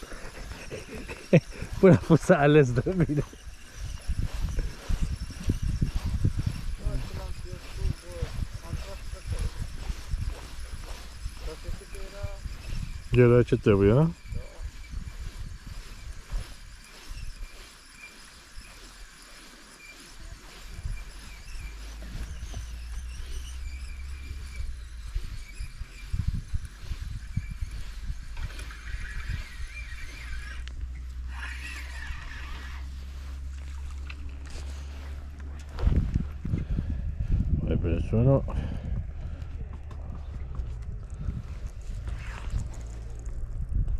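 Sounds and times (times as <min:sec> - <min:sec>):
fishing reel winding: 0:00.0 - 0:35.4.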